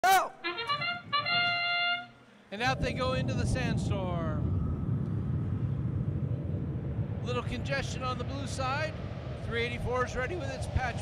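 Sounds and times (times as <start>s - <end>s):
trumpet fanfare: 0.0s - 2.3s.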